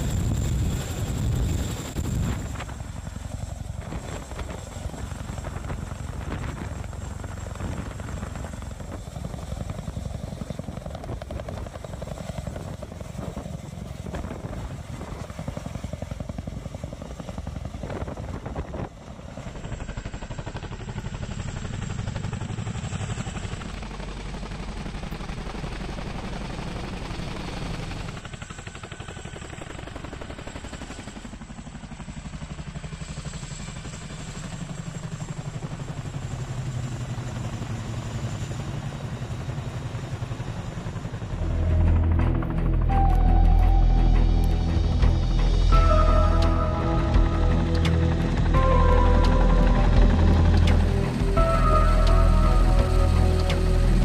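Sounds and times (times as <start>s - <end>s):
turbine noise: 0.0s - 16.0s, 40.4s - 54.0s
fast helicopter rotor beat: 0.0s - 54.0s.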